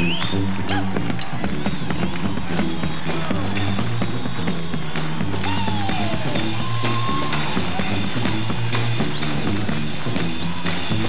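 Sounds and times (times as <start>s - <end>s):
sousaphone bass line: 0.0s - 11.0s.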